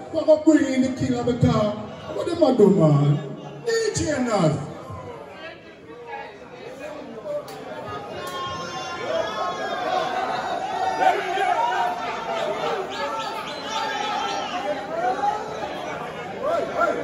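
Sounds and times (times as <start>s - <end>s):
indistinct chatter: 0.0s - 17.0s.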